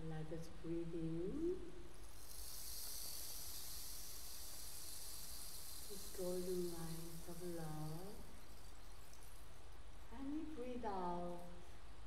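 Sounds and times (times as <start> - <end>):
rain stick trickling hiss: 1.8 - 12.0.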